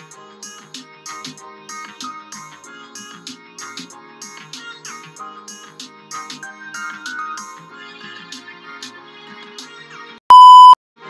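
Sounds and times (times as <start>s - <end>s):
loud electronic beep tone: 10.3s - 10.8s.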